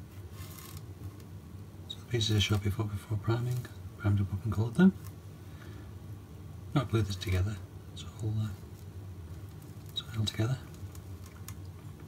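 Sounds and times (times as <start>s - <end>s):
fingers rustling plastic part: 0.3s - 1.3s.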